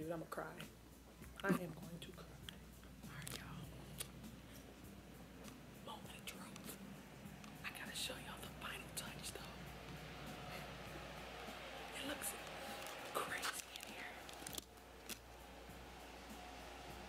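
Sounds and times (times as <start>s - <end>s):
man whispering: 5.8s - 6.8s, 7.6s - 9.6s, 13.1s - 14.3s.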